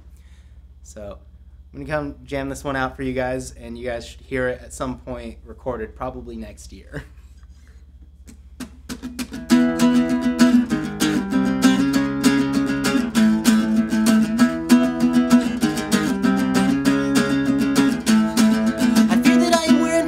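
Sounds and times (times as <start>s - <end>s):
acoustic guitar strumming: 8.6s - 20.0s.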